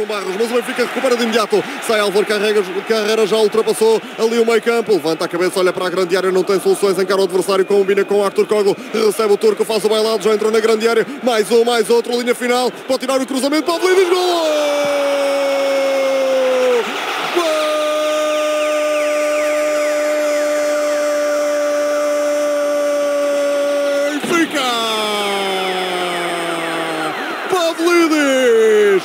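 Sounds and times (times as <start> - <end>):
quick breath: 1.6 - 1.8
commentator shouting goal call: 9.0 - 29.0.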